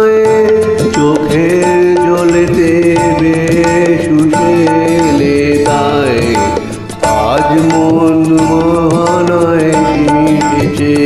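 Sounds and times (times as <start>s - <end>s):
karaoke backing track: 0.0s - 11.0s.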